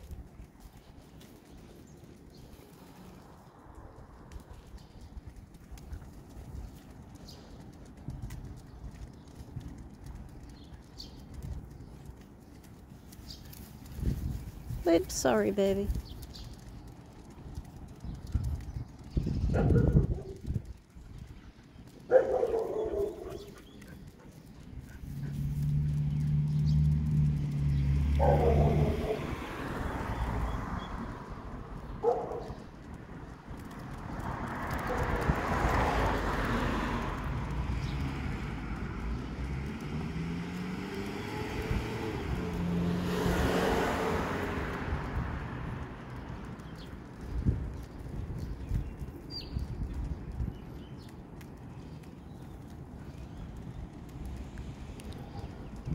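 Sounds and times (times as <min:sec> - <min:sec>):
vehicles passing: 0:00.0 - 0:55.9
dogs barking: 0:19.5 - 0:20.4, 0:22.0 - 0:25.5, 0:28.1 - 0:29.5, 0:31.9 - 0:32.7, 0:34.7 - 0:35.4.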